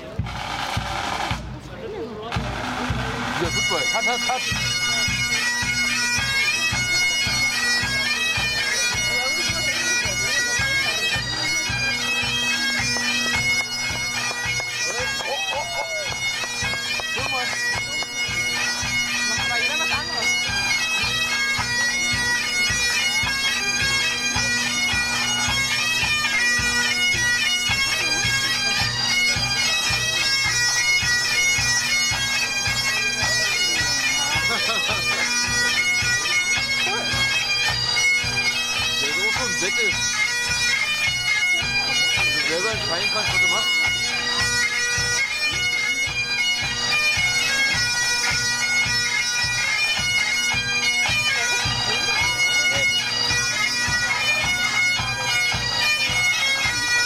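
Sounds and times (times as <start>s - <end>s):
drumming: 0.0s - 6.0s, 12.5s - 30.1s
bagpipes playing over drones: 2.0s - 57.0s.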